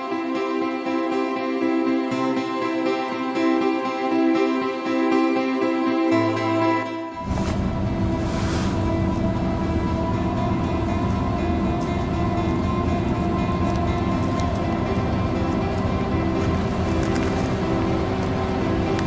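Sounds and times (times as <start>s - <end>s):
background music with held tones: 0.0s - 19.0s.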